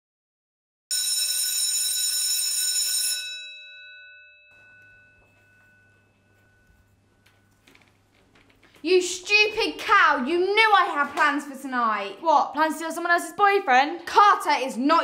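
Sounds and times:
electric school bell ringing: 0.9 - 7.9.

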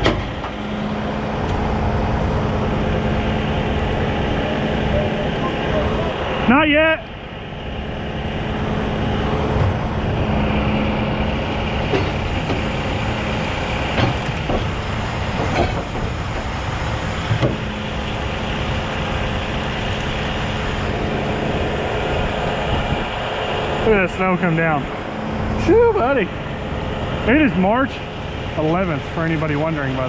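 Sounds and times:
sharp knocks: 0.0 - 0.6, 13.9 - 16.6, 17.2 - 17.8
diesel engine running: 0.0 - 30.0.

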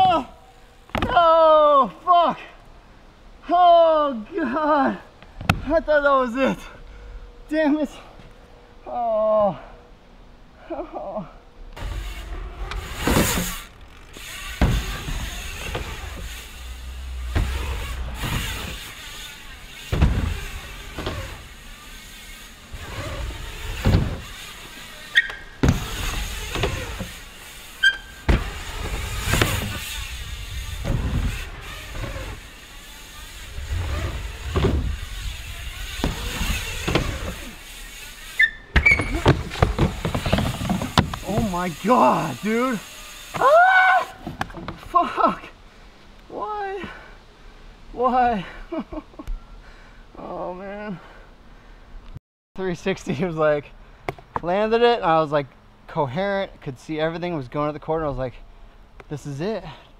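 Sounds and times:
bike tyres rolling on wooden ramp: 0.0 - 1.9, 11.7 - 45.5
bike landing knocks: 0.9 - 1.3, 5.3 - 5.7, 11.8 - 41.7
tyre squeals on wood: 11.8 - 44.8.

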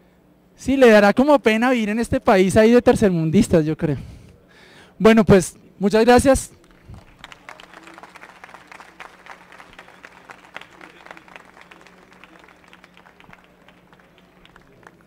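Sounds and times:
audience applauding: 6.6 - 15.0.

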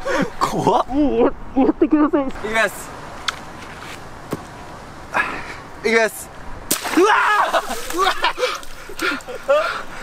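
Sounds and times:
water balloon bursting: 6.7 - 8.7
water gushing: 6.9 - 9.3.

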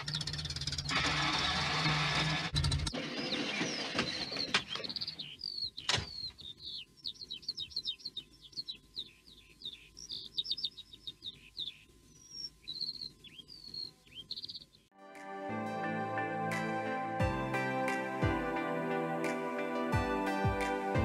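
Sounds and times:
bird chirps and trills: 2.6 - 14.9
gentle music: 15.0 - 21.0.

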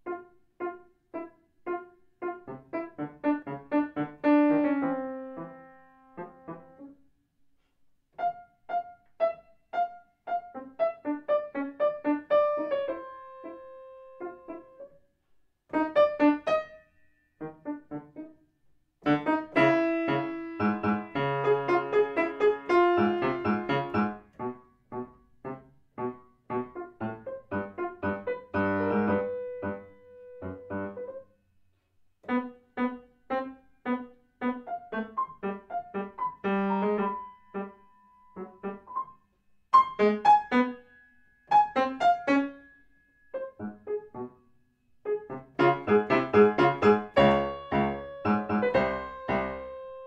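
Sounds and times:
solo piano playing: 0.0 - 7.0, 8.2 - 15.0, 15.7 - 18.4, 19.0 - 31.3, 32.2 - 44.4, 45.0 - 50.0.

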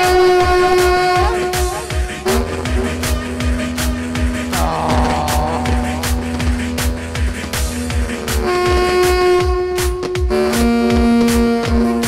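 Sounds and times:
keyboard: 0.0 - 12.0
reedy wind instrument melody: 0.0 - 12.0
steady drum beat: 0.0 - 12.0.

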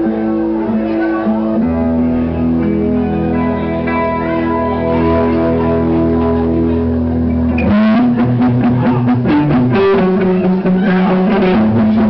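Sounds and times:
bass line: 0.0 - 12.0
electric guitar long held notes: 0.0 - 12.0.

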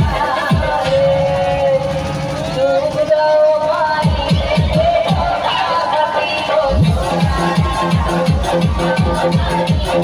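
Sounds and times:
dance track on sound system: 0.0 - 10.0.

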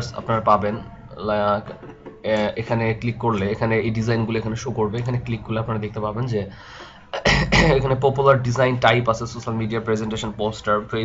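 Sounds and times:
man speaking: 0.0 - 6.6, 7.2 - 11.0
short breath: 6.5 - 7.1
man clearing throat: 7.2 - 7.9.

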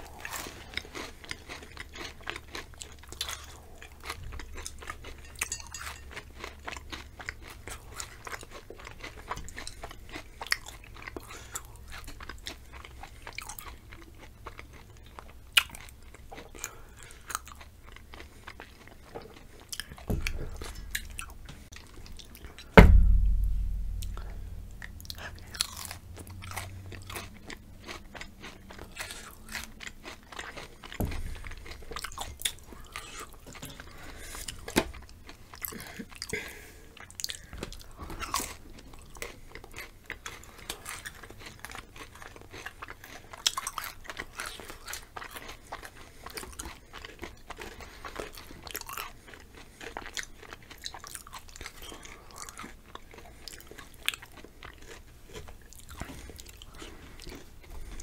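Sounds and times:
chewing and crunching chips: 0.0 - 22.8, 23.7 - 58.0.

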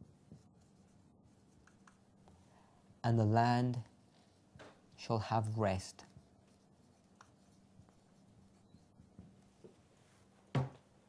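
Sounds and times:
marker pen writing on paper: 0.0 - 2.1, 6.0 - 9.5.

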